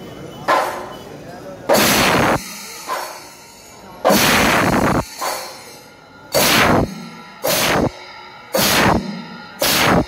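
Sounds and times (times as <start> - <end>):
drums and cymbals bursts: 1.7 - 10.0.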